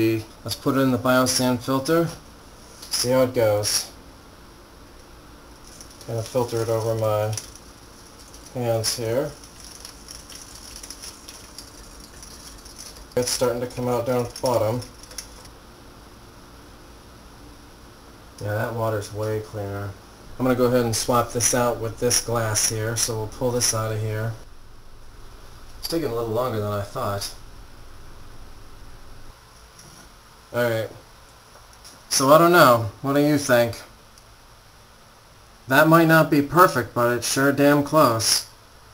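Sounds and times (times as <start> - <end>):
steady hiss: 0.0 - 38.9.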